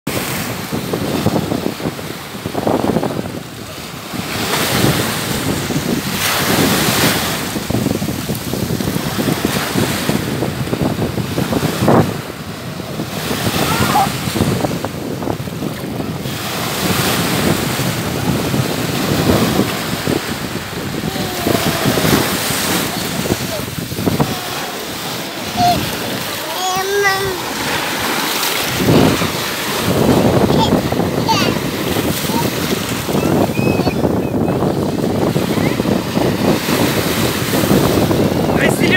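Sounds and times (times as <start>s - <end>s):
small waves breaking on sand: 0.1s - 38.9s
voices calling out: 20.8s - 29.4s.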